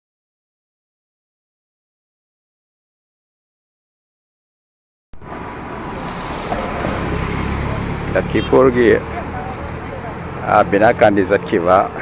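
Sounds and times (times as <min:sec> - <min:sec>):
van engine and tyre rumble: 0:05.2 - 0:12.0.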